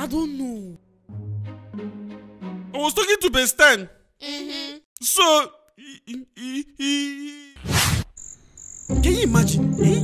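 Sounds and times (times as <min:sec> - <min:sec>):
person humming: 0:04.2 - 0:04.8
cricket chirring: 0:08.0 - 0:10.0.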